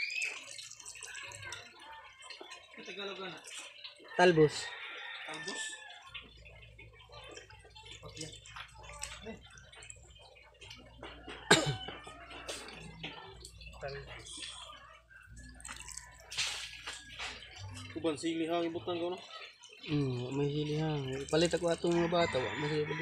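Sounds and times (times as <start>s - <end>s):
water dripping and splashing: 0.0s - 23.0s
wet leaves rustling and crinkling: 15.5s - 23.0s.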